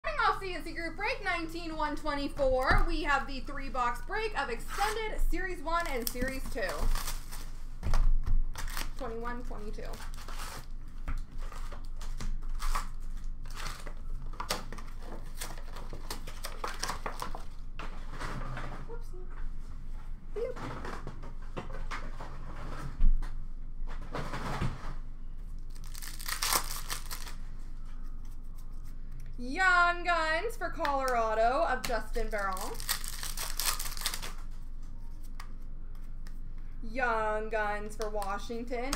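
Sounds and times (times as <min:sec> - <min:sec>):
wrappers tearing and crinkling: 0:05.7 - 0:07.6, 0:08.5 - 0:17.6, 0:25.6 - 0:27.6, 0:31.8 - 0:34.7.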